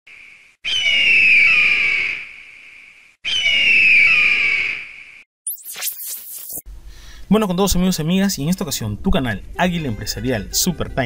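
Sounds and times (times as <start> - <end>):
bird of prey screaming: 0.1 - 5.2.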